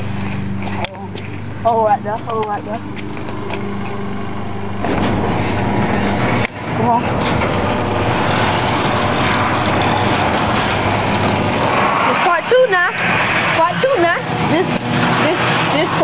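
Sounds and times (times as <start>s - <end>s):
garage door opener rumbling: 1.4s - 16.0s.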